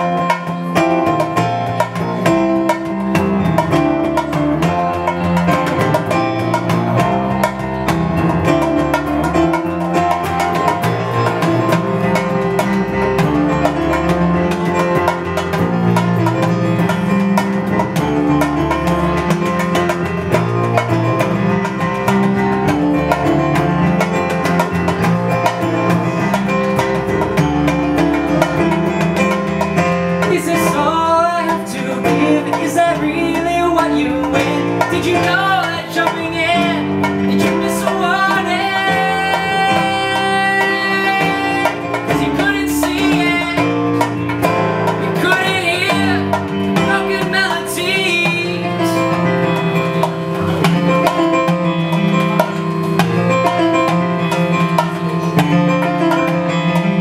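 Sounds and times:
plucked strings: 0:00.0 - 0:57.0
person singing: 0:30.2 - 0:49.6.

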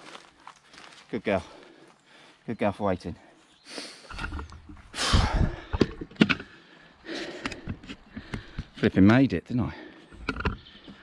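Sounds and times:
sharp clicks and knocks: 0:10.1 - 0:10.6.

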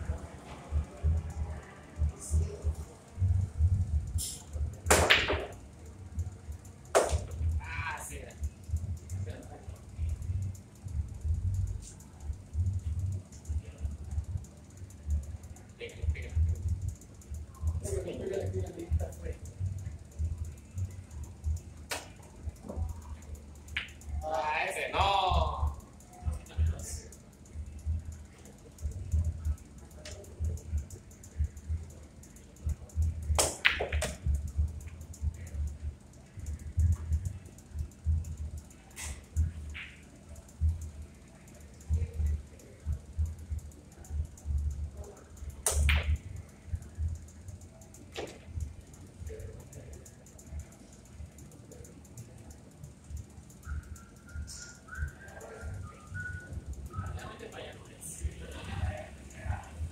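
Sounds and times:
cue tip clicks: 0:04.2 - 0:05.6, 0:06.9 - 0:07.6, 0:21.4 - 0:23.0, 0:23.6 - 0:24.1, 0:32.7 - 0:35.7, 0:38.2 - 0:40.7, 0:45.4 - 0:47.2
pool balls clacking: 0:04.9 - 0:05.6
murmur of voices: 0:48.9 - 0:59.9.

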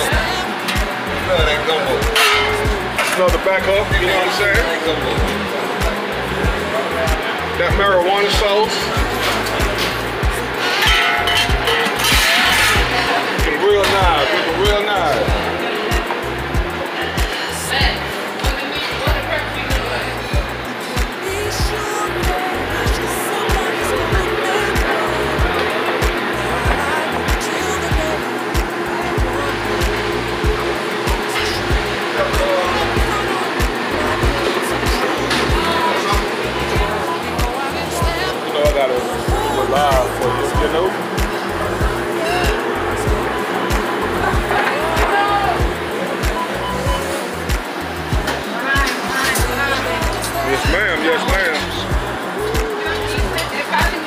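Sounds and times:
background music: 0:00.0 - 0:54.0
indistinct voices: 0:00.0 - 0:54.0
steady kitchen hum: 0:00.0 - 0:54.0.

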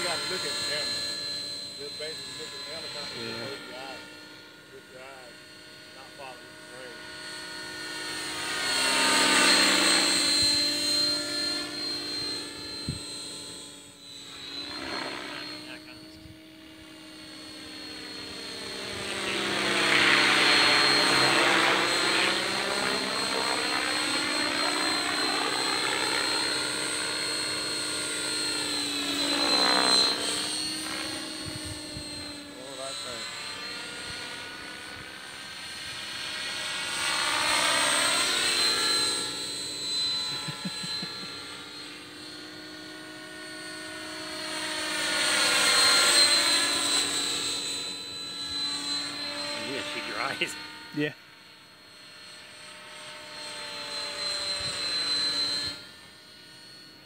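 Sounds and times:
rc helicopter rotor and motor: 0:00.0 - 0:57.0
steady high whine: 0:00.0 - 0:57.0.

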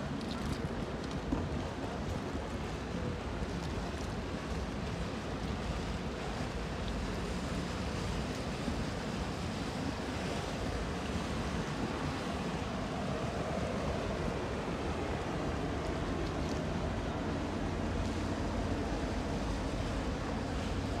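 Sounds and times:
water lapping against a quay: 0:00.0 - 0:21.0
water taxi engine passing: 0:00.1 - 0:21.0
motorboat engines humming: 0:04.1 - 0:21.0.

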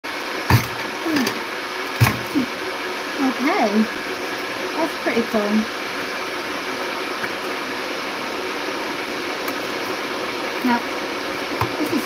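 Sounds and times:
fry cutter thunk: 0:00.5 - 0:01.4, 0:02.0 - 0:02.4.

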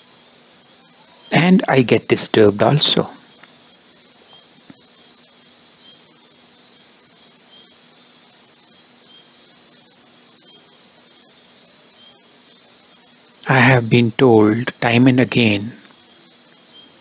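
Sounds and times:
faint background hiss: 0:00.0 - 0:17.0.

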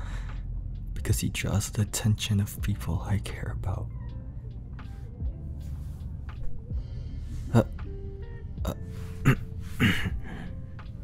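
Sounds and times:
quiet lo-fi background music: 0:00.0 - 0:11.0.

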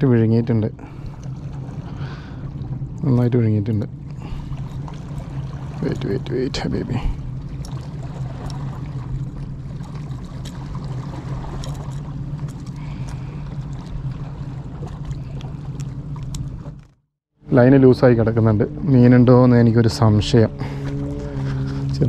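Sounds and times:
wind rumble on microphone: 0:17.6 - 0:22.0.

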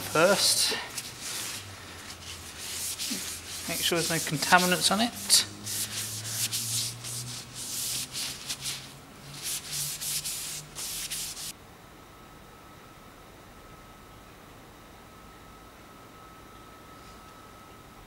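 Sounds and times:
cloth rubbing metal frame: 0:00.0 - 0:11.5
faint high hum: 0:00.0 - 0:18.0.

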